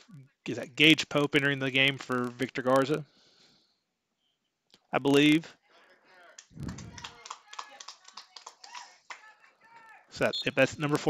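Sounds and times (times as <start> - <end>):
faint background talking: 5.1 - 11.0.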